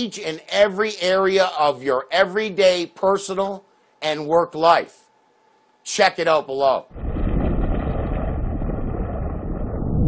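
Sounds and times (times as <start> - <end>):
deep cinematic rumble: 6.9 - 10.0.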